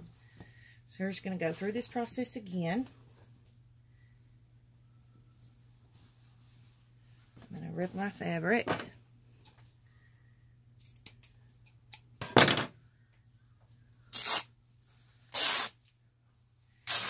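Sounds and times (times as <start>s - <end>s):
fabric being torn by hand: 14.1s - 14.5s, 15.3s - 15.8s.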